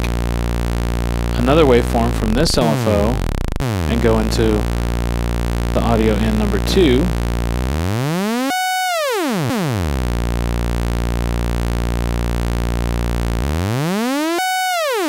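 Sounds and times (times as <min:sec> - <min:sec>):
buzzy synthesizer drone: 0:00.0 - 0:15.0.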